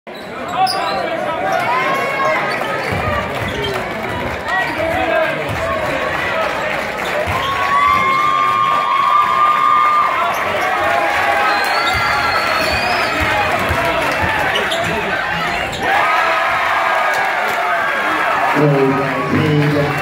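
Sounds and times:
crowd voices and shouts: 0:00.1 - 0:20.0.

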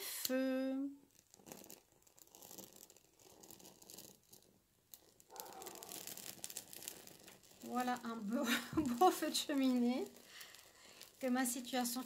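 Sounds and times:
leaves crackling as they burn: 0:05.2 - 0:12.0.

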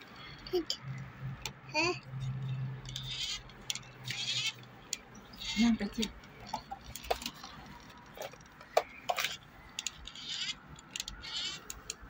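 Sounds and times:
small plastic clicks: 0:02.8 - 0:12.0.

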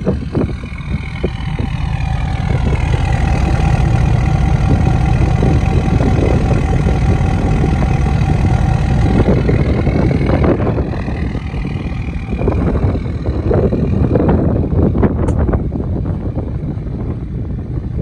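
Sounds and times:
diesel engine idling: 0:00.0 - 0:18.0.

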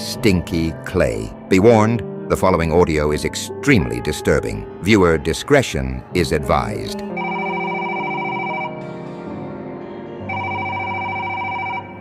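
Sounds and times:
low background music: 0:00.0 - 0:12.0
telephone ringing: 0:07.1 - 0:08.8, 0:10.3 - 0:12.0.

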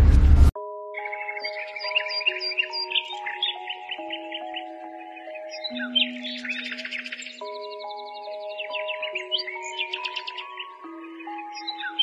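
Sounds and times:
loud rumbling boom: 0:00.0 - 0:00.5
soft music of held notes: 0:00.6 - 0:12.0
birds chirping rapidly: 0:01.0 - 0:12.0.

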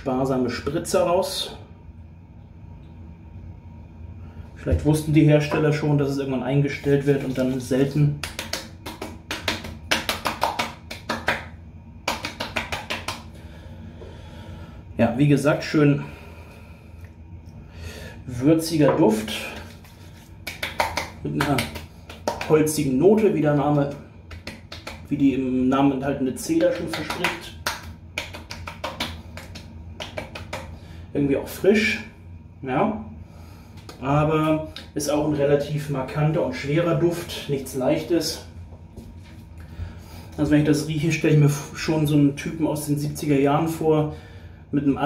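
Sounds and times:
hand slaps on bare skin: 0:08.2 - 0:11.5, 0:12.1 - 0:13.2, 0:24.3 - 0:25.1, 0:26.8 - 0:30.7.

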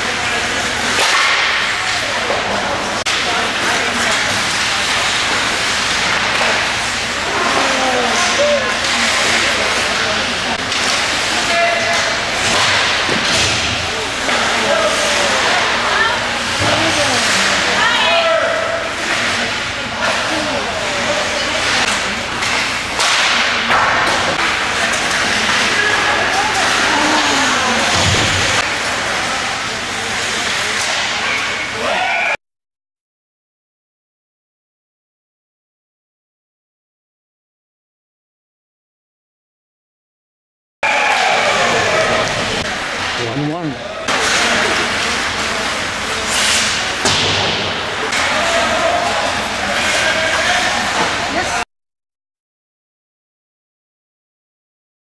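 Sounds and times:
hockey sticks and puck clacking: 0:00.3 - 0:31.7, 0:44.1 - 0:51.5
people calling out: 0:25.4 - 0:28.6.

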